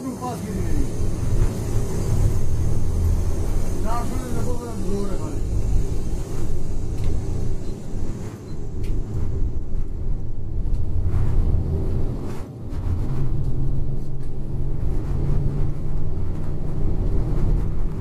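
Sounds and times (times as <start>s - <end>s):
bus engine rumble: 0.0s - 18.0s
road noise: 0.0s - 18.0s.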